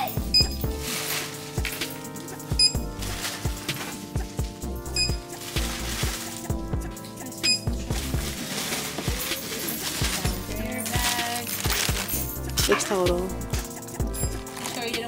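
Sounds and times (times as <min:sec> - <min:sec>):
background music with steady beat: 0:00.0 - 0:15.0
barcode scanner beeps: 0:07.4 - 0:07.6.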